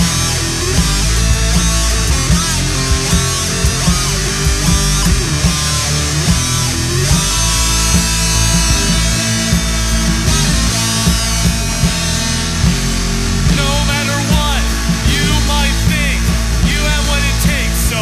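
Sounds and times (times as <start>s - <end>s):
bass guitar: 0.0s - 18.0s
drum kit beat: 0.0s - 18.0s
electric guitar: 0.0s - 18.0s.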